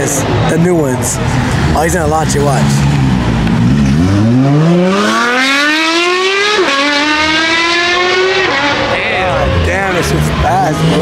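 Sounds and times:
sports car accelerating hard: 1.3 - 11.0.

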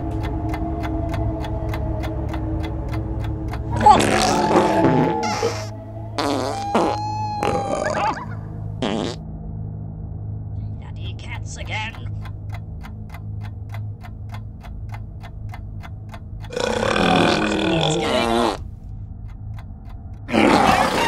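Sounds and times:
background music with ticking beat: 0.0 - 9.2, 10.6 - 21.0
farts: 4.1 - 8.2, 8.8 - 9.2, 16.8 - 18.6, 20.3 - 21.0.

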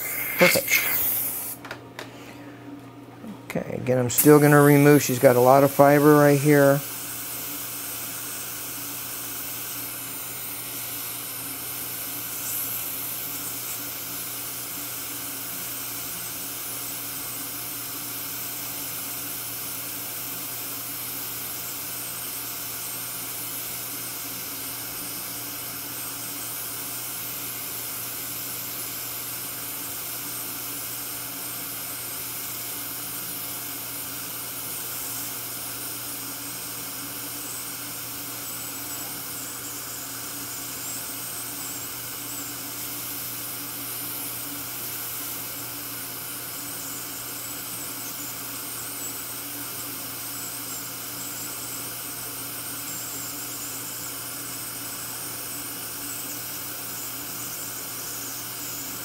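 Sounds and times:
steady hiss: 0.0 - 1.6, 3.8 - 59.0
faint machine hum: 0.0 - 59.0.

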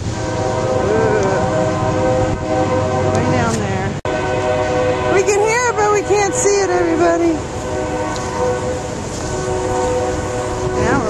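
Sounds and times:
rain: 0.0 - 5.3, 5.9 - 11.0
distant train horn: 0.0 - 11.0
wind: 0.0 - 11.0.

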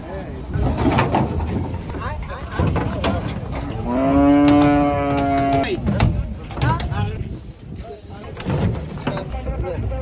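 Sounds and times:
crowd noise: 0.0 - 10.0
cow mooing: 3.8 - 5.7.

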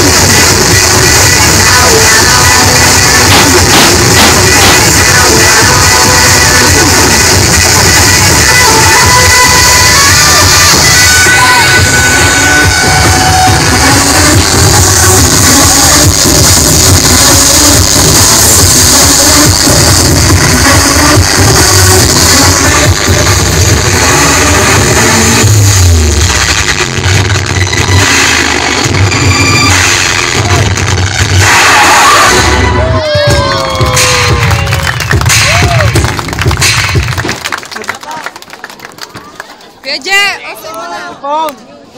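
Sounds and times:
electronic dance music: 0.0 - 38.0.

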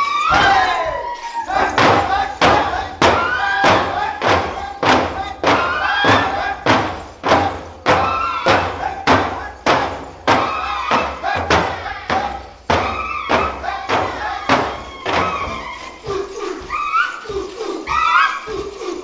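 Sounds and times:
frame drums beating: 0.0 - 18.7
rhythmic vocal calls: 0.0 - 19.0.

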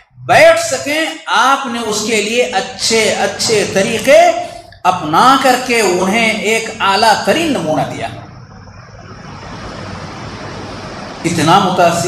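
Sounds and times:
low hum: 2.6 - 12.0.

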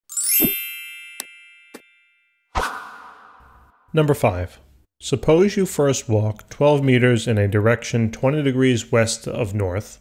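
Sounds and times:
bright ringing chime: 0.1 - 2.5.

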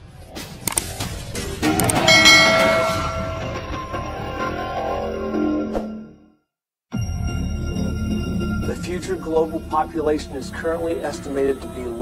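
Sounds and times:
bell-like metallic ringing: 2.0 - 4.5.

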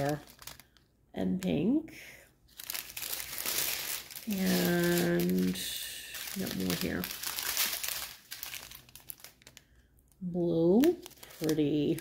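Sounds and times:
plastic bags crinkling: 0.0 - 0.9, 2.5 - 12.0.

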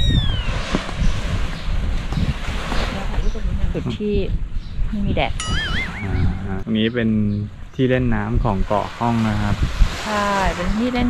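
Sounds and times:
wind buffeting microphone: 0.0 - 11.0
tone sliding down: 5.4 - 6.8.

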